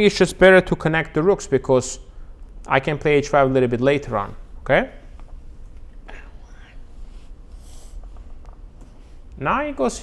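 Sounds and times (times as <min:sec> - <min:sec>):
low room hum: 0:00.0 - 0:10.0
breathy whispering: 0:06.1 - 0:07.0.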